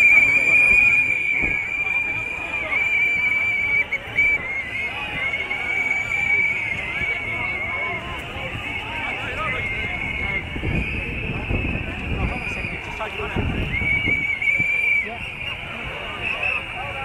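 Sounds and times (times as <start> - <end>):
crowd voices talking: 0.0 - 17.0.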